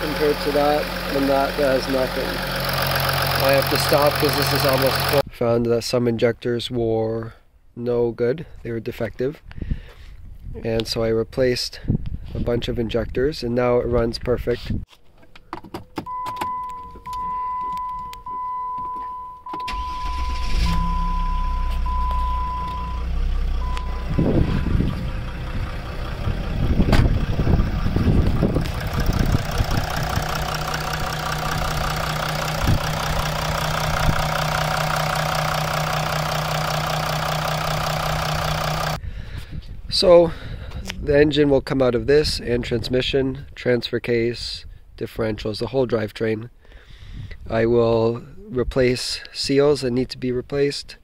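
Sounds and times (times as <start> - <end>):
diesel engine cranking and starting: 0.0 - 5.2, 16.1 - 39.0
diesel engine idling: 0.0 - 5.2, 19.6 - 39.0
dashboard chime beeping: 16.1 - 24.8.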